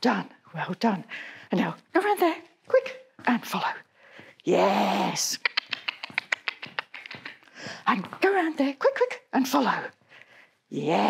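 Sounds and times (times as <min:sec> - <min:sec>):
dog claws clicking on hard floor: 0:05.5 - 0:08.6.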